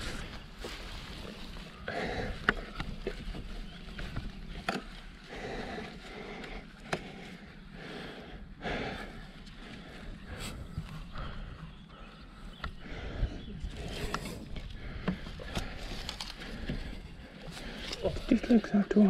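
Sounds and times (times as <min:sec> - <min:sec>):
wind rumbling on microphone: 0:09.9 - 0:18.3.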